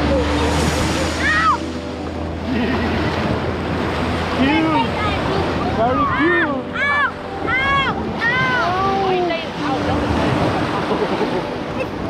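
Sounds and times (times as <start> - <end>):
small waves breaking on sand: 0.0 - 12.0.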